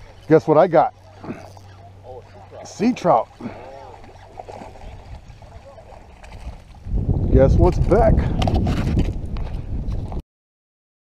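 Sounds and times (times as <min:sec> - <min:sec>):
fish splashing in water: 0:01.0 - 0:06.8.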